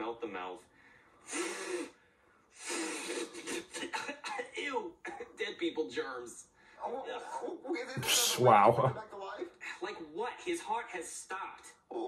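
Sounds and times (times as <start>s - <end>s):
raspy breathy blowing voice: 1.2s - 2.0s, 2.6s - 3.8s.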